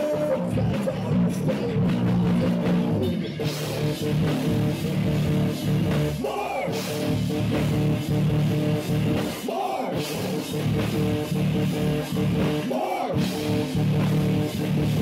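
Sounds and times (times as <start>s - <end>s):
live metal band playing: 0.0s - 15.0s.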